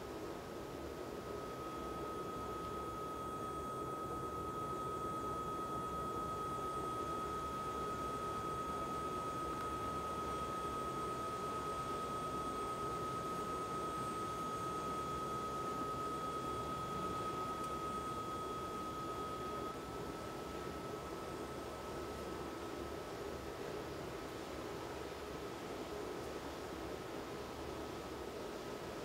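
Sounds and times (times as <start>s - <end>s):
steady high tone: 0.9s - 22.6s.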